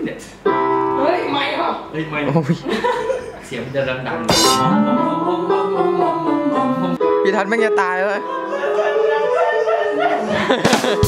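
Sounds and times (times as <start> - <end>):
men talking: 2.0 - 5.7
men laughing: 2.6 - 3.4, 10.0 - 11.0.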